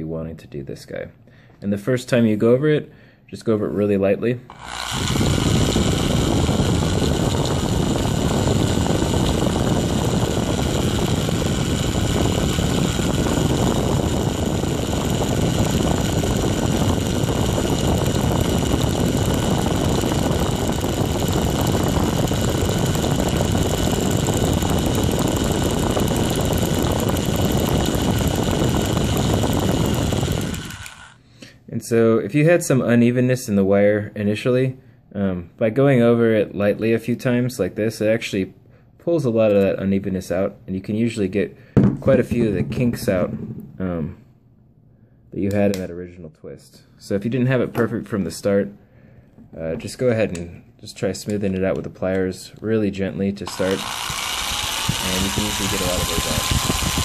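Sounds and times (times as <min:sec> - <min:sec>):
power drill whining: 0:04.5 - 0:31.2, 0:53.4 - 0:57.0.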